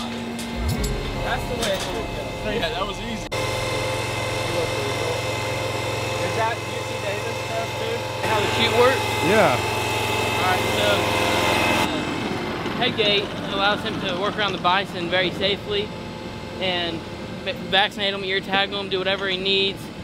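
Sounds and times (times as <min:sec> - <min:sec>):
small engine running: 0:02.5 - 0:20.0
voices talking: 0:06.2 - 0:09.6.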